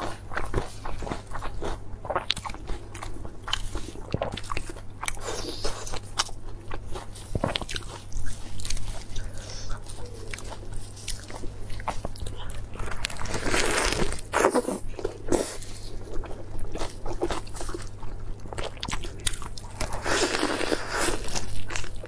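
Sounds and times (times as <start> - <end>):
chewing: 0.0 - 22.0
lettuce crinkling and crunching: 0.0 - 22.0.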